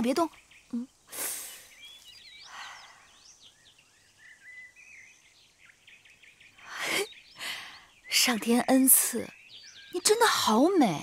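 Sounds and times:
small birds chirping: 0.0 - 11.0
short hissing bursts: 1.1 - 1.9.

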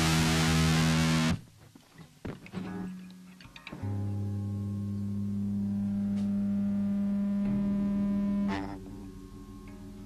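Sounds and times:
electric guitar sustained note: 0.0 - 1.4, 2.7 - 10.0.

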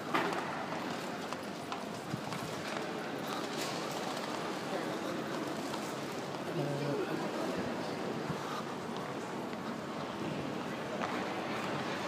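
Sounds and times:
station hall hubbub: 0.0 - 12.0.

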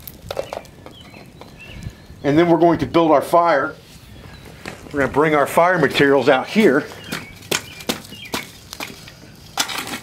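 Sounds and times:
shovel scraping wood and soil: 8.7 - 10.0.

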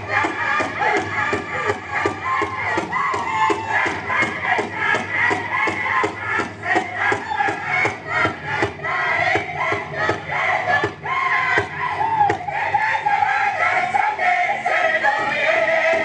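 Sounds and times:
drum steady beat: 0.0 - 13.9
group chanting in high voices: 0.0 - 16.0.

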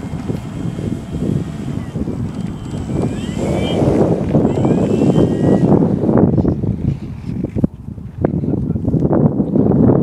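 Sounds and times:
model airplane motor and propeller: 0.0 - 7.7
wind rumble on microphone: 0.0 - 10.0.

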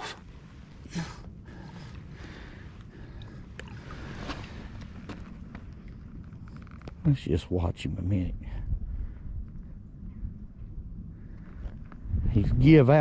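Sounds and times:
wind rumbling on microphone: 0.0 - 13.0
water lapping at bank: 1.8 - 6.0.

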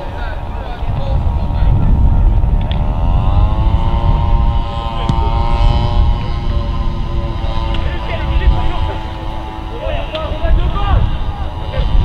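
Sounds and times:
engine hum rising in pitch: 0.0 - 12.0
heavy low rumble: 0.0 - 12.0.

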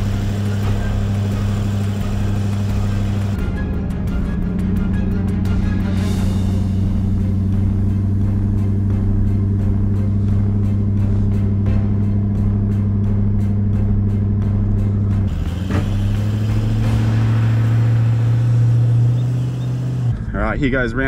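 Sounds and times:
diesel engine at high revs: 0.0 - 20.9.

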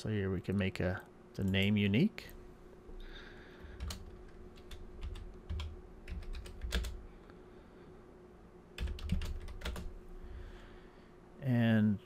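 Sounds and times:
computer keyboard typing: 3.7 - 7.0, 8.8 - 10.0.

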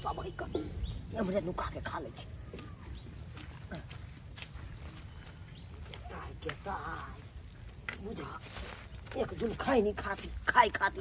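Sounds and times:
footsteps on brick rubble: 2.6 - 11.0.

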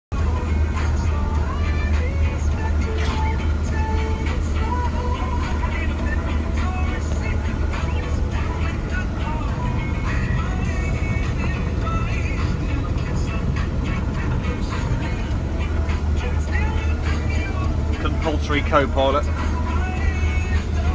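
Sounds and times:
music with singing: 0.1 - 20.9
combine harvester droning: 0.2 - 20.9.

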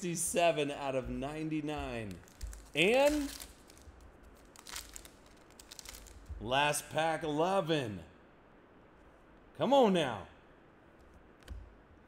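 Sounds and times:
foil wrapper crinkling: 1.8 - 6.4
foil tearing open: 2.0 - 6.3.

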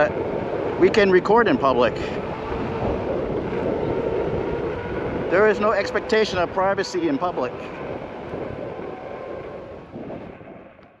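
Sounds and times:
road noise: 0.0 - 11.0
wind rushing over microphone: 0.0 - 11.0.

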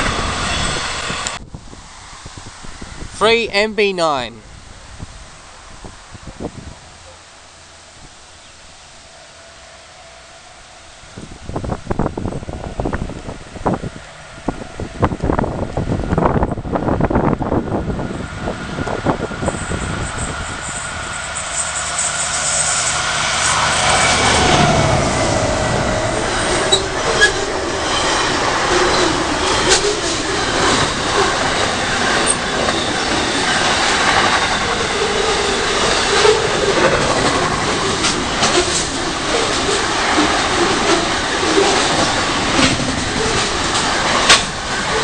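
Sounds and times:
freight train passing: 0.0 - 45.0
train clatter: 18.8 - 45.0.

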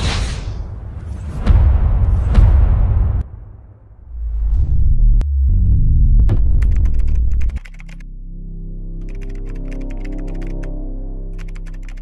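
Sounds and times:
low rumbling impact hit: 1.7 - 7.5
keyboard typing clicks: 6.6 - 8.0, 9.0 - 10.7, 11.4 - 12.0.

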